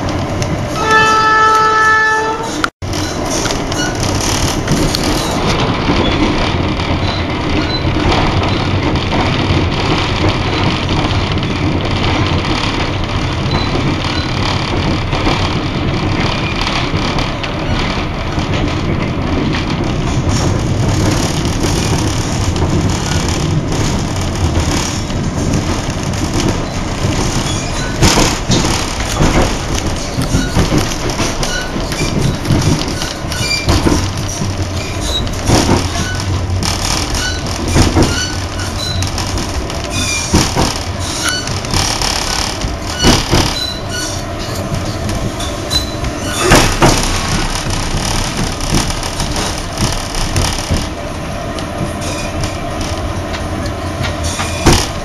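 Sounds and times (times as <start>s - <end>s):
train carriage rumble and rattle: 0.0s - 55.0s.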